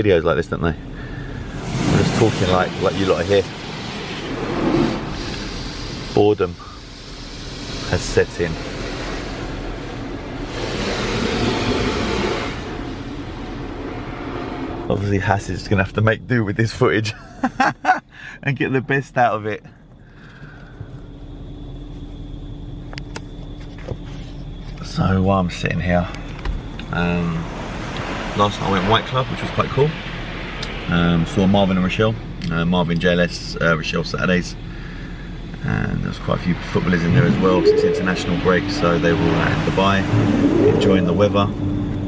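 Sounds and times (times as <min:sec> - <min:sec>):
car wash spray and machinery: 0:00.0 - 0:19.6, 0:20.2 - 0:42.0
faint steady whine: 0:00.0 - 0:42.0.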